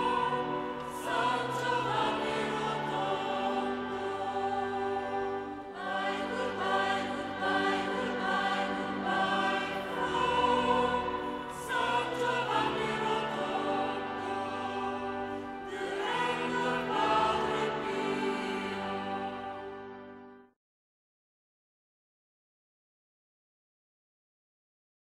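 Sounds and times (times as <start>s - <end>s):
choir singing slow chords: 0.0s - 20.6s.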